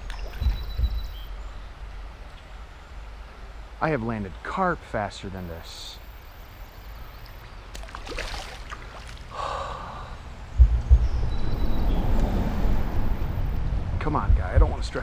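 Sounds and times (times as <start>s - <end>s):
water splashing and sloshing: 0.0s - 3.0s, 7.1s - 9.5s
heavy low rumbling: 9.3s - 15.0s.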